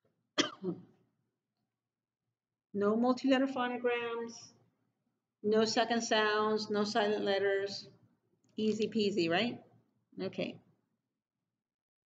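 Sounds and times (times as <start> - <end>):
woman coughing: 0.4 - 0.9.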